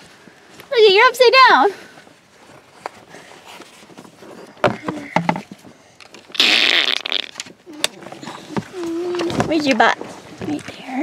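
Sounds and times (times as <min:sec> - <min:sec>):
strap rasping zip: 0:06.3 - 0:07.5.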